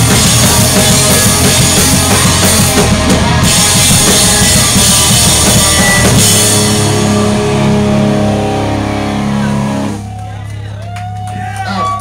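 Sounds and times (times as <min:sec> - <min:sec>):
pop-punk band playing live: 0:00.0 - 0:11.2
held guitar chord ringing: 0:04.4 - 0:10.3.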